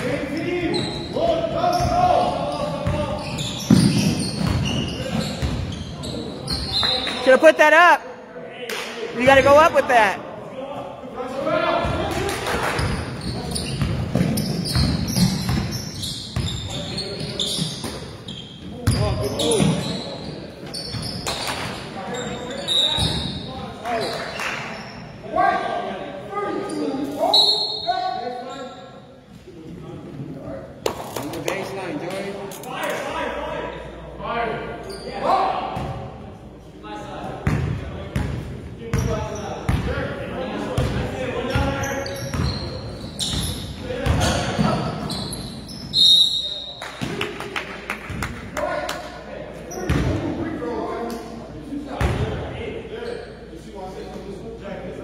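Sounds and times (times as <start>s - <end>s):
shoe squeaks: 0.4s - 7.4s, 12.8s - 21.5s, 22.1s - 25.1s, 26.6s - 28.9s, 34.8s - 35.3s, 41.6s - 46.8s, 53.0s - 53.5s.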